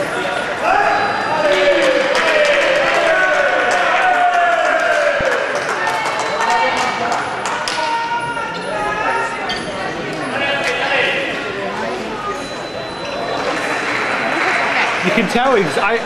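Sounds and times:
voices shouting and cheering: 0.0 - 9.6.

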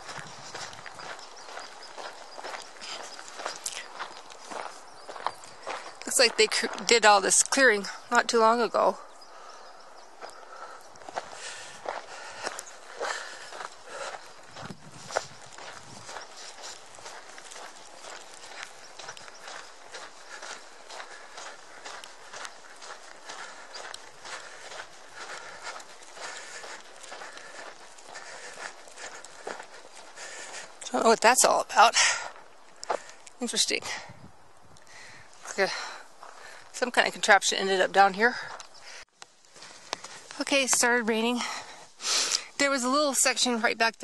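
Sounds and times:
footsteps on dirt trail: 0.0 - 44.0.

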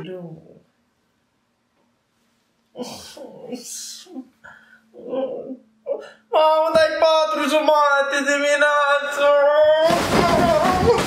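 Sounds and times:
man groaning and whining: 4.9 - 6.5, 9.2 - 11.0.

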